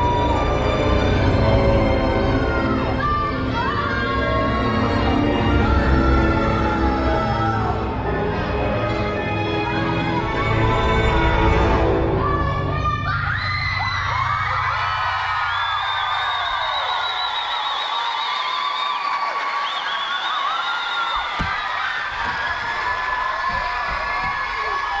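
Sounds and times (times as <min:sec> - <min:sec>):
audience cheering and shrieking: 0:12.8 - 0:25.0.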